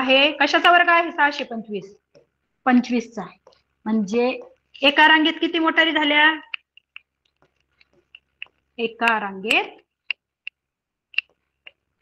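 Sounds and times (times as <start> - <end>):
woman speaking: 0.0 - 2.0, 2.6 - 6.6, 8.8 - 9.9.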